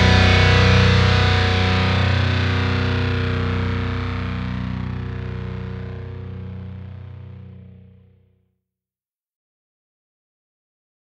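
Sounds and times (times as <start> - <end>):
distorted electric guitar chord: 0.0 - 8.1.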